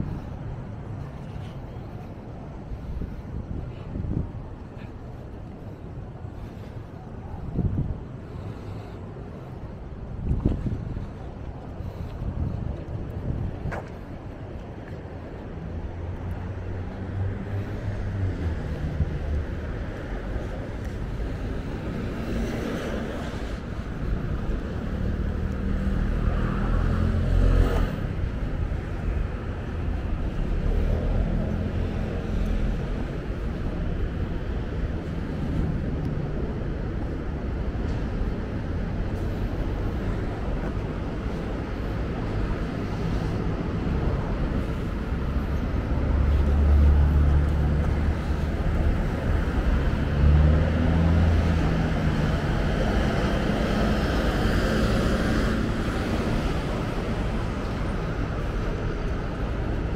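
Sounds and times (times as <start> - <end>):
cars passing: 0.0 - 59.9
low engine rumble: 0.0 - 59.9.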